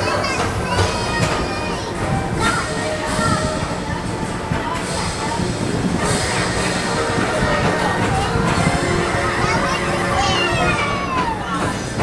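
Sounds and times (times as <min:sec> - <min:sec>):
train rolling along track: 0:00.0 - 0:12.0.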